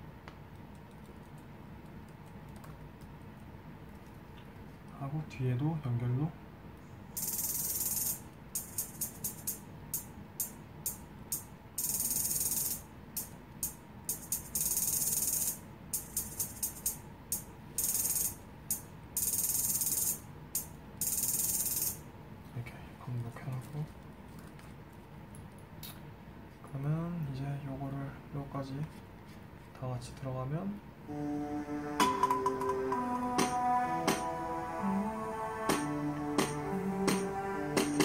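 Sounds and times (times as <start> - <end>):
programmed hissing percussion beat: 7.2 - 22.0, 32.0 - 34.4, 35.7 - 38.0.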